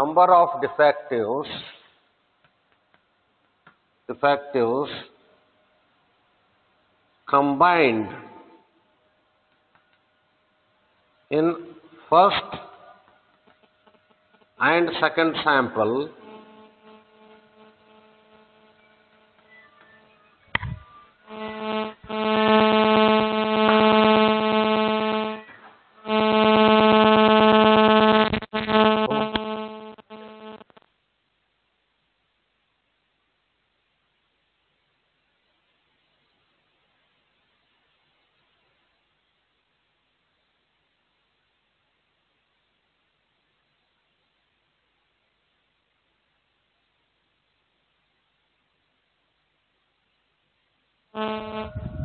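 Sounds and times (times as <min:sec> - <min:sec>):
steady electrical buzz: 0:00.0 - 0:31.2, 0:34.7 - 0:52.0
click: 0:09.5 - 0:10.0.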